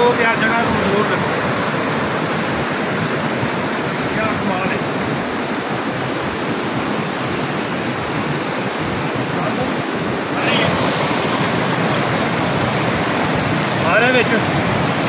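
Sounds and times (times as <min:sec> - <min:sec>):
river rushing over boulders: 0:00.0 - 0:15.0.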